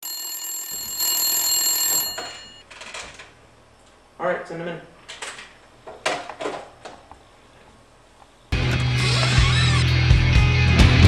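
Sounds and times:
telephone bell ringing: 0.0 - 2.6.

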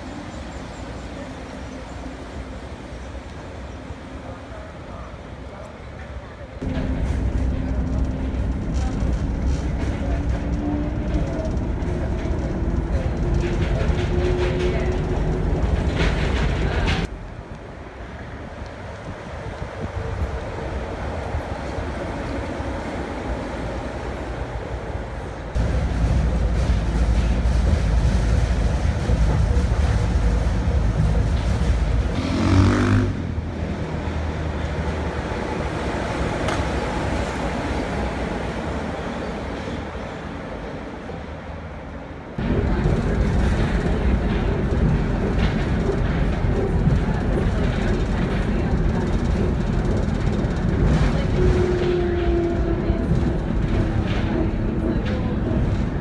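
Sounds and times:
monorail train rumble: 0.0 - 56.0.

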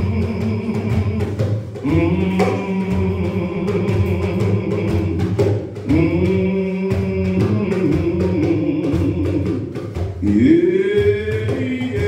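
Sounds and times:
person singing long held notes: 0.0 - 12.0
steady drumming: 0.0 - 12.0.

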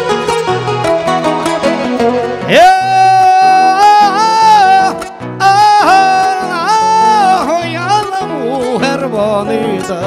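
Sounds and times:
acoustic guitars: 0.0 - 10.0
man singing a long high note: 2.5 - 10.0.

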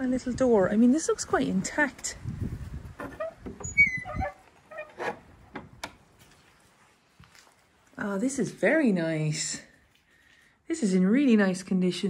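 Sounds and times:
high squeak: 3.2 - 5.2
sharp clicks and knocks: 5.5 - 6.1.

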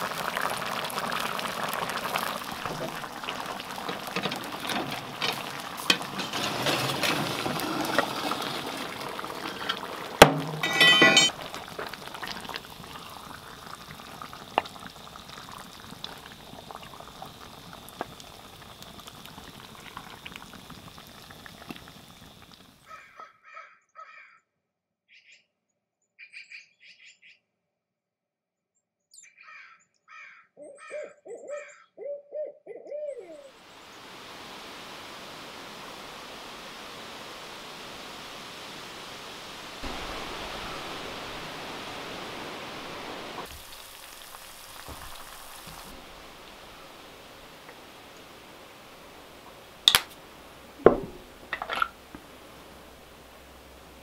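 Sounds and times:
skillet simmering: 0.0 - 22.8, 33.6 - 54.0
wood fire crackling: 0.0 - 22.8, 34.2 - 54.0
steady rain: 0.0 - 22.9, 33.5 - 54.0
owl hoots and calls: 29.4 - 33.6.

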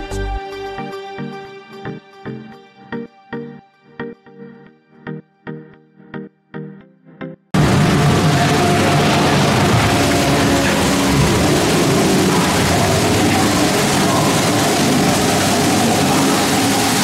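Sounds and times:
flowing and falling water: 7.6 - 17.0.

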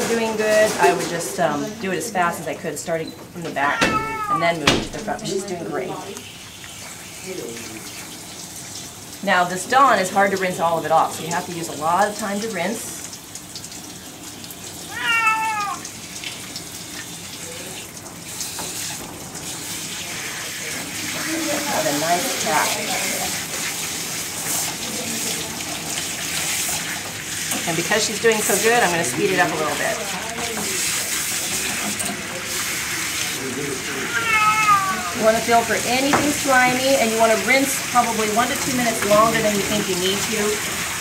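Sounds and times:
cat meowing: 3.7 - 4.7, 14.8 - 15.9, 34.0 - 35.2.

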